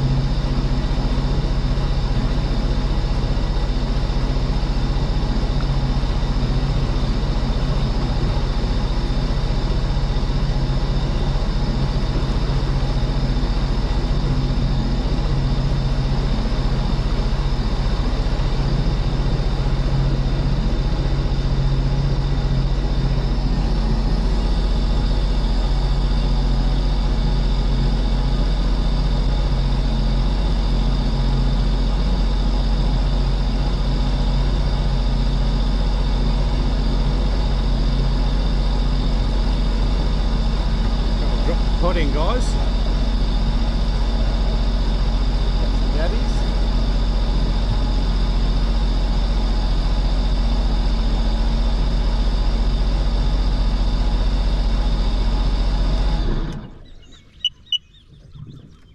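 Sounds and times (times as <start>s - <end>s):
jet boat engine running: 0.0s - 58.9s.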